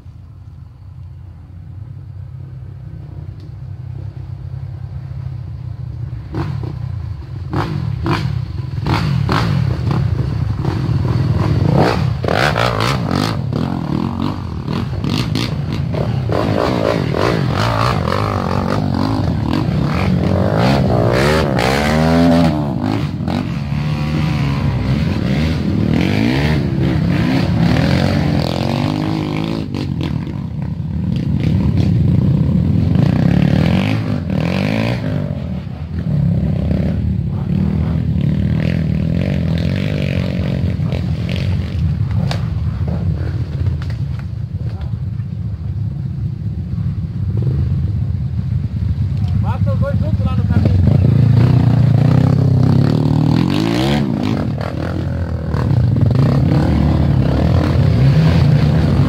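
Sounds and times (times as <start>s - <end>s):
dirt bike engines: 0.0s - 59.0s
engine revving: 7.5s - 43.9s, 49.8s - 59.0s.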